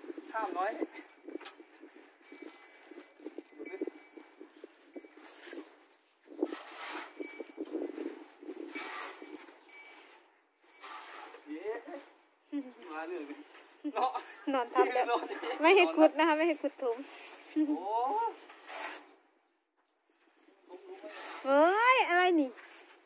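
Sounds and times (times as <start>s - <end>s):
tool scraping dry dirt: 0.1s - 12.0s, 18.4s - 19.2s, 20.7s - 23.0s.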